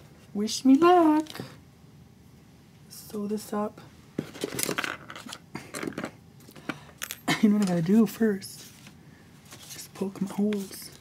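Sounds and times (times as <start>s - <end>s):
papery rustles: 7.6s - 11.0s.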